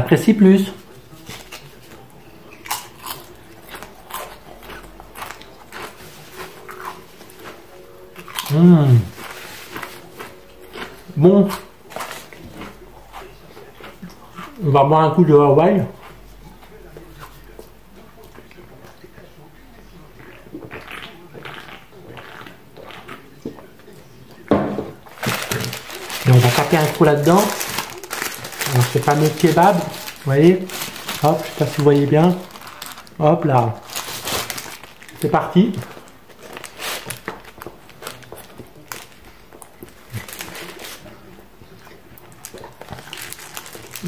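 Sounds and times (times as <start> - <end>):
person chewing food: 0.9 - 14.8, 15.9 - 24.4, 25.0 - 44.0.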